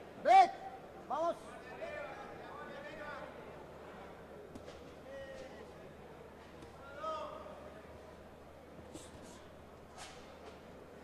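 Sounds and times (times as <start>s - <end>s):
arena background noise: 0.0s - 11.0s
man shouting: 0.2s - 1.4s
shouted words: 0.2s - 1.4s.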